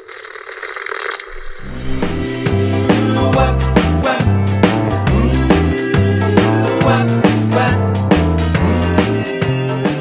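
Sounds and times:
television static hiss: 0.0s - 2.2s
static crackles: 0.0s - 2.4s
music with heavy bass line: 1.6s - 10.0s.

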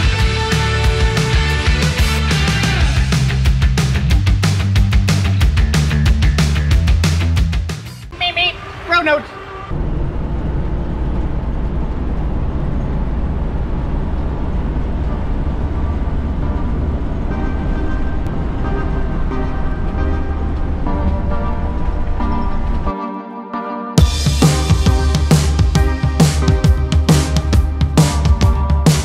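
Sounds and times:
road and engine rumble: 8.1s - 22.9s
faint music: 14.4s - 23.1s.

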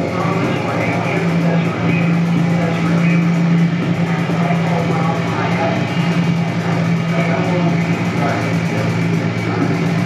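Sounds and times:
grainy engine-like texture: 0.0s - 10.0s
loud low drone: 0.0s - 10.0s.

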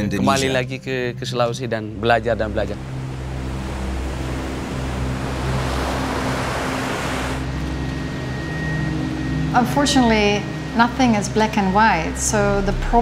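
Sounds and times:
surf breaking on pebble shore: 2.8s - 7.5s.

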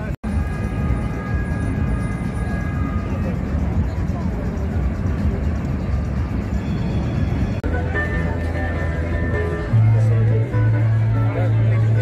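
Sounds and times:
low city rumble: 0.0s - 12.0s
many people talking: 0.0s - 12.0s
music playing among a crowd: 0.0s - 12.0s.

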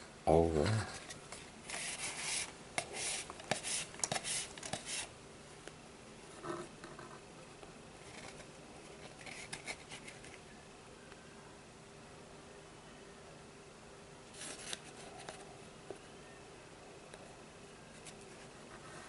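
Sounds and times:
cord rubbing and scraping: 8.0s - 10.4s.

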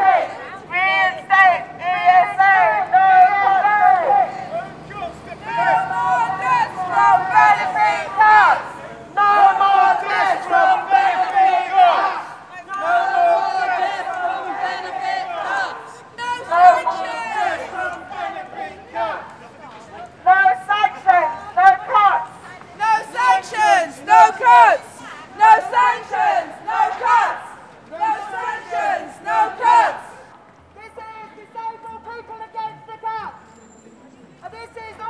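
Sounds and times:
person shouting through a megaphone: 0.0s - 19.2s, 20.2s - 30.2s.

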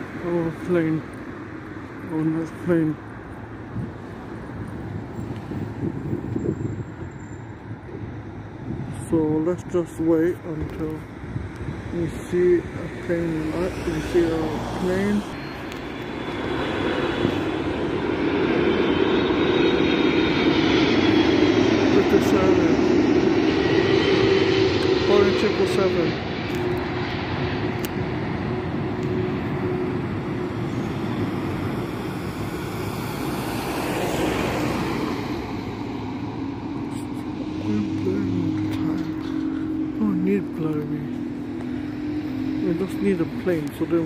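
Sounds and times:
jet airliner flying overhead: 0.0s - 44.0s.

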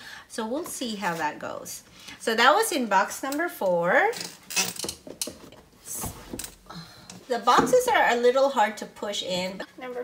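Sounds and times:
cardboard scraping and knocking: 5.0s - 6.4s.

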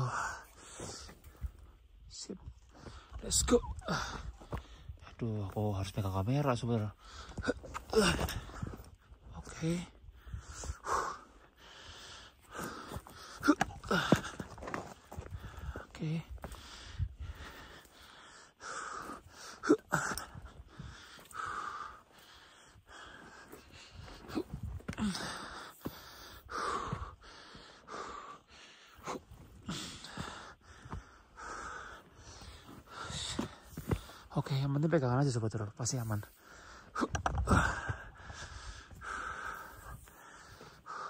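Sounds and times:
man panting: 0.0s - 1.8s, 2.6s - 5.1s, 6.8s - 34.4s, 36.0s - 41.0s.

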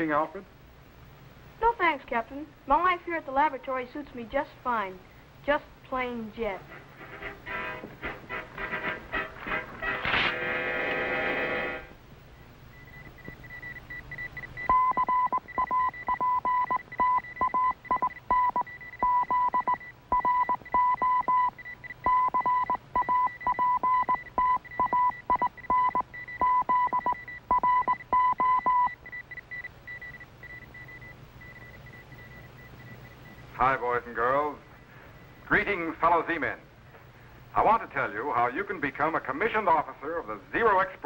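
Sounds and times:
morse code like beeping: 12.8s - 33.4s.

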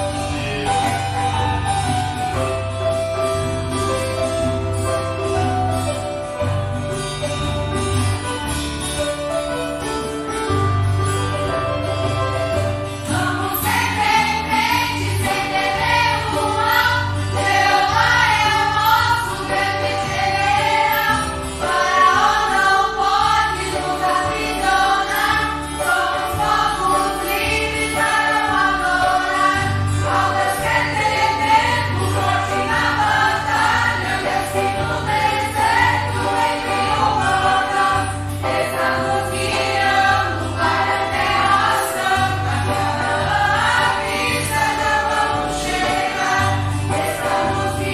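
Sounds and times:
keyboard accompaniment: 0.0s - 47.9s
choir singing a hymn: 13.0s - 47.9s.

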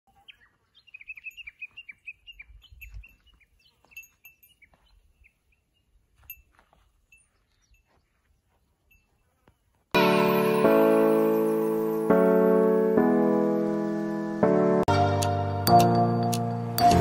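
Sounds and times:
songbirds chirping: 0.1s - 10.0s.

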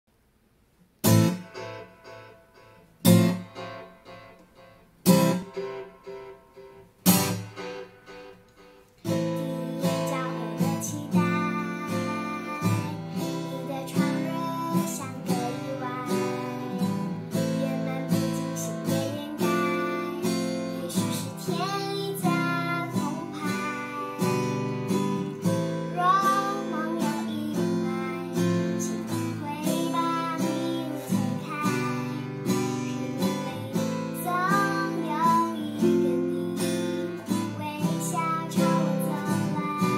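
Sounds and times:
acoustic guitar strumming: 1.0s - 39.9s
girl singing: 9.1s - 39.9s.

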